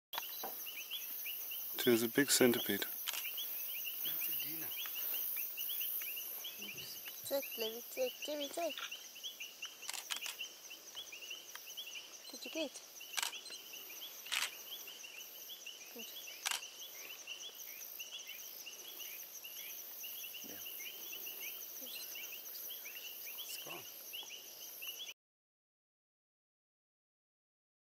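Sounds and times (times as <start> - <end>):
high insect hiss: 0.2 - 25.1
man speaking: 1.8 - 2.9, 4.0 - 4.8
sharp clicks: 3.0 - 3.4, 9.6 - 10.4, 13.1 - 13.6, 14.3 - 14.6, 16.4 - 16.6.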